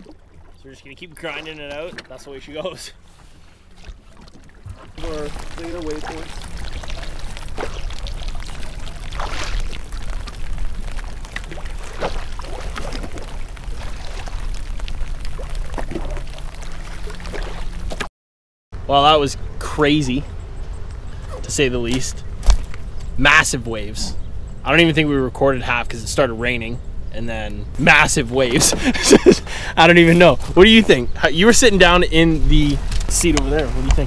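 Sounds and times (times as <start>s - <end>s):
waves slapping against hull: 0.0s - 18.1s, 28.3s - 29.4s, 30.1s - 34.0s.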